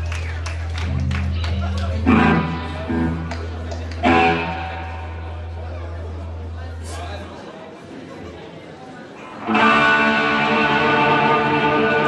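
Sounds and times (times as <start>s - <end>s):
electric guitar ringing: 0.8s - 6.6s, 9.4s - 12.0s.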